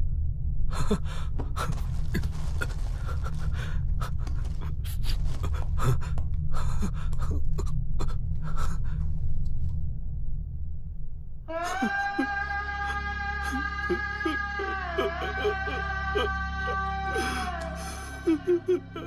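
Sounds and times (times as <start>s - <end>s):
steady low rumble: 0.0s - 18.6s
man gasping and panting: 0.7s - 9.0s.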